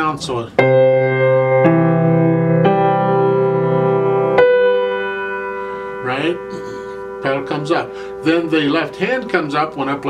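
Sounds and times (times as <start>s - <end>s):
slow grand piano melody: 0.6s - 10.0s
sustained low piano chord: 0.6s - 10.0s.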